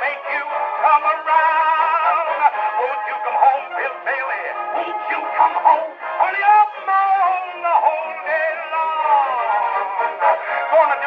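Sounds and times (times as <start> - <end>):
orchestra music on old phonograph: 0.0 - 11.0.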